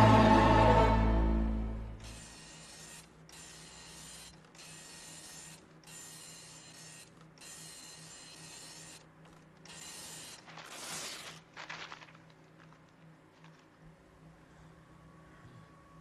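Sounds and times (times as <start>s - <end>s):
impact printer printing: 2.0s - 10.7s.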